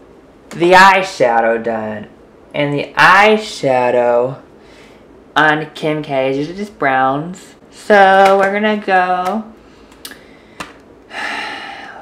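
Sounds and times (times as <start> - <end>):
man gasping inhale: 9.7 - 12.0.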